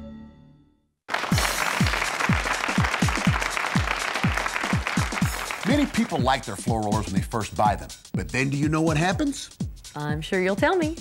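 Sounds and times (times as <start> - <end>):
studio audience applauding: 1.1 - 7.2
upbeat music with thudding beat: 1.3 - 11.0.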